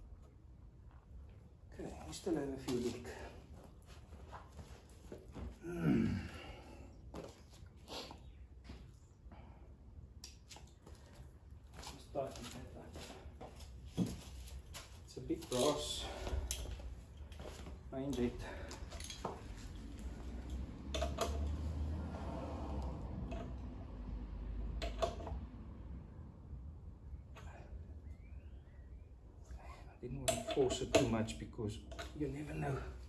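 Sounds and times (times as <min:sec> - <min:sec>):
metal hand tools clinking: 0:30.2 - 0:32.2.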